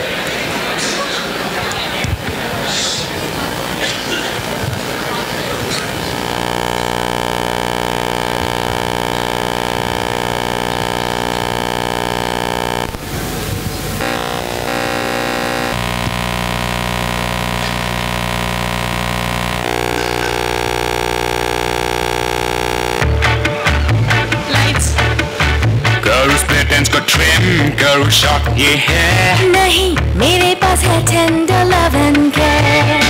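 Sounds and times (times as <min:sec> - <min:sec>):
electronic drone from loudspeakers: 0:03.4 - 0:29.5
burst of noise: 0:05.6 - 0:23.1.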